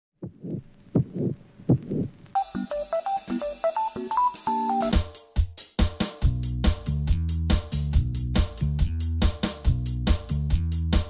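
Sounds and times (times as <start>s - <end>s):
heartbeat double thumps: 0.2s - 2.2s.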